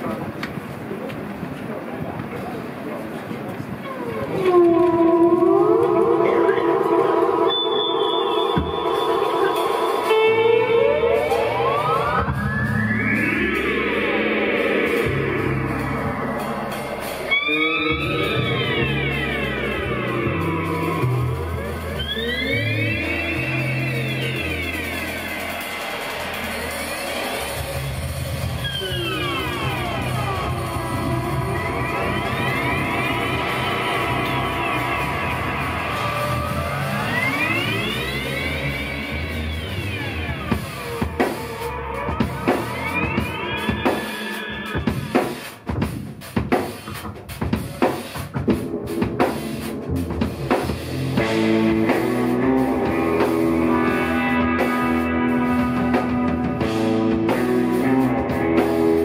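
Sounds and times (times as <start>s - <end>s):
bass guitar: 3.6s - 59.0s
electric guitar with effects: 3.8s - 45.3s, 48.4s - 59.0s.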